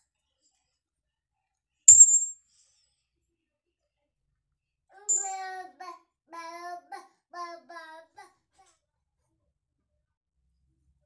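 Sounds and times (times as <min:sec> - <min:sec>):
brief high ringing tone: 0:01.9 - 0:02.3, 0:05.1 - 0:05.4.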